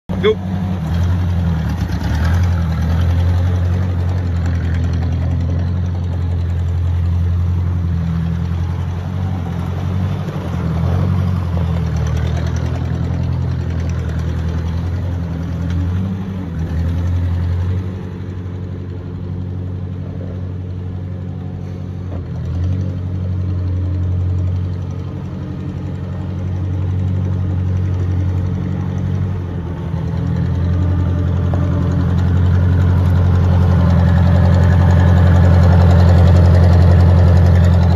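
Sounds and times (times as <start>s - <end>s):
tractor engine running: 0.0s - 37.9s.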